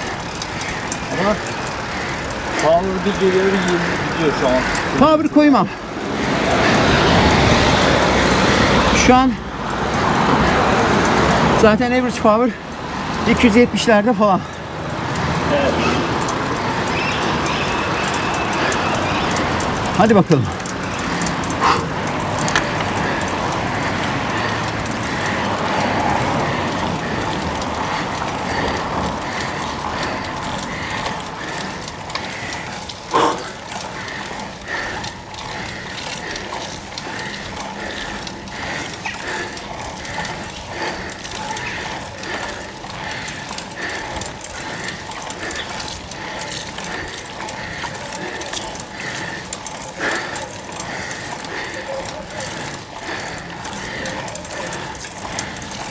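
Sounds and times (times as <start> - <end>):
rhythmic pedaling sound: 0.0 - 55.9.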